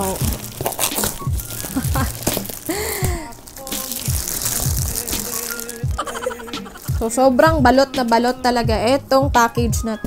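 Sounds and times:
packing tape peeling: 0:00.0 - 0:07.0
plastic crinkling: 0:00.0 - 0:07.3
background music: 0:00.0 - 0:10.0.

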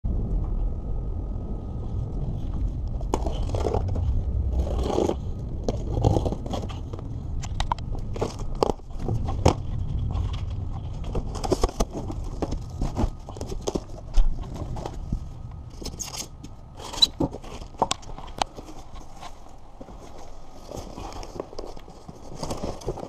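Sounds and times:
steady low rumble: 0:00.0 - 0:23.0
cardboard box being opened: 0:08.1 - 0:15.2, 0:16.8 - 0:23.0.

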